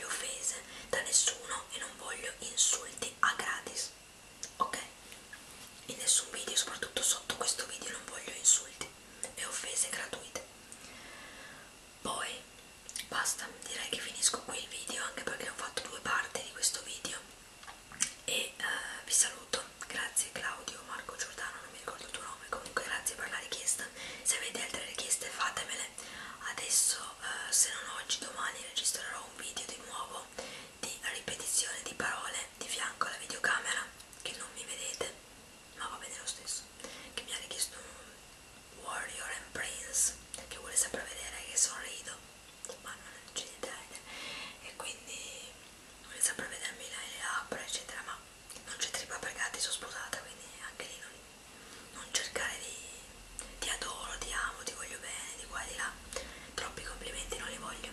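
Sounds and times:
woman whispering: 0.0 - 5.0, 5.9 - 10.5, 12.0 - 17.3, 18.3 - 35.2, 35.8 - 38.2, 38.8 - 51.2, 51.9 - 57.9.

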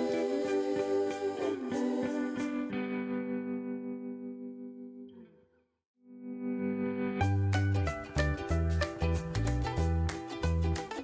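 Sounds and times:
background music with guitar: 0.0 - 11.0.

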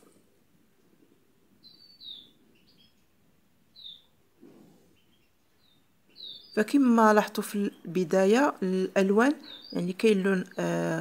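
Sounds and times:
faint bird chirps: 0.7 - 11.0
soft low rustle: 4.2 - 5.8.

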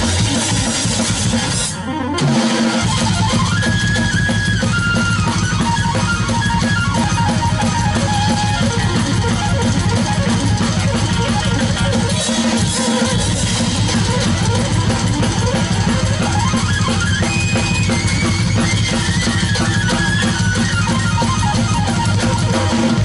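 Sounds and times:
distorted electric guitar: 0.0 - 23.0
drum kit with cymbal crashes: 0.0 - 23.0.

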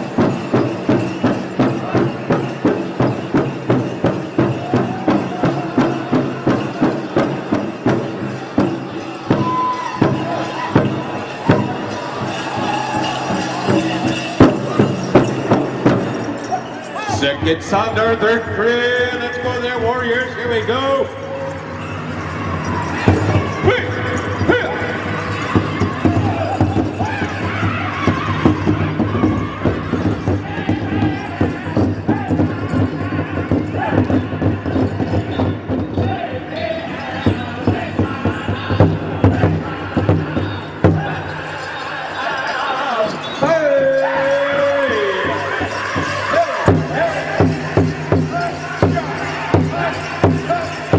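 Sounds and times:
drum group singing: 0.0 - 16.5, 22.2 - 50.9
big drum strokes: 0.0 - 18.6
jingling bells: 0.0 - 50.9.

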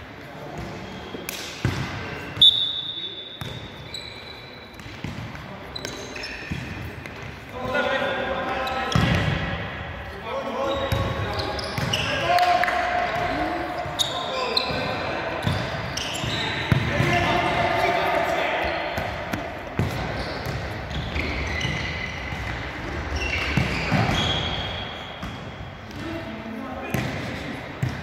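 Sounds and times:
shoes squeaking on hall floor: 0.6 - 7.5, 8.2 - 9.2, 10.6 - 12.4, 13.3 - 17.5, 18.6 - 25.9.

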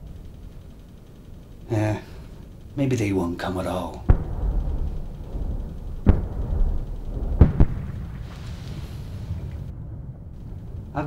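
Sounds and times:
steady low rumble: 0.0 - 11.0
explosions: 4.1 - 11.0.

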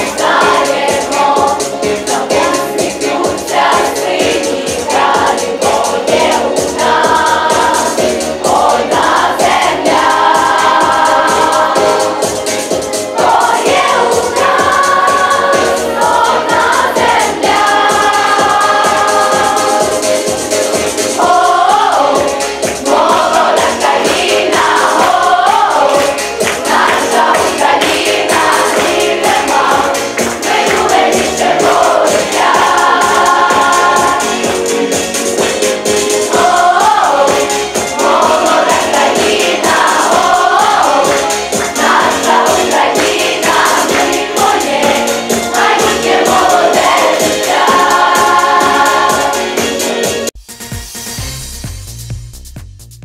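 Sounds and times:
choir singing long held notes: 0.0 - 50.3
instrumental accompaniment with beat: 0.0 - 53.0.

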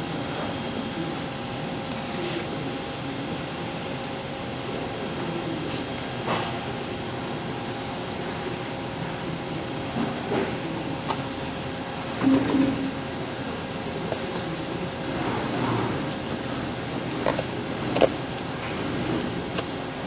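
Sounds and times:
bending machine humming: 0.0 - 20.0.

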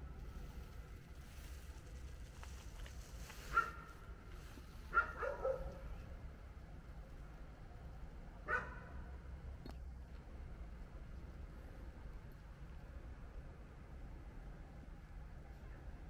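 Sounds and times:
dog barking: 3.5 - 3.9, 4.9 - 5.8, 8.5 - 8.9.

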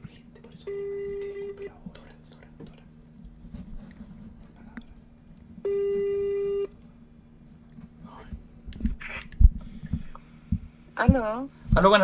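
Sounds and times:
telephone ringback tone: 5.7 - 6.7.

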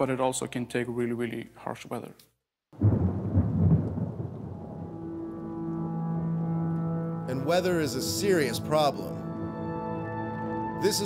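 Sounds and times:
deep rumble: 2.8 - 6.1
held chord of background music: 4.4 - 11.0.

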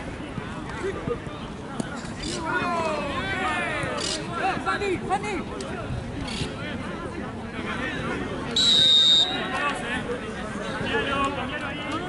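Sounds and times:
people calling out and talking: 0.0 - 12.0.

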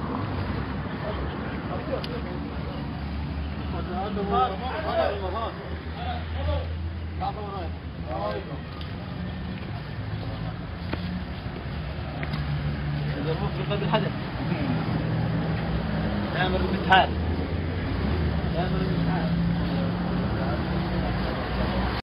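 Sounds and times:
faint distant voices: 0.0 - 15.1.

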